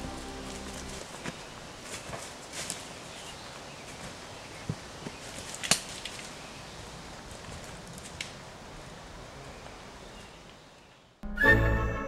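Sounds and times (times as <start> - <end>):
footsteps on dry leaves: 0.0 - 6.5
twig snapping: 5.4 - 6.3.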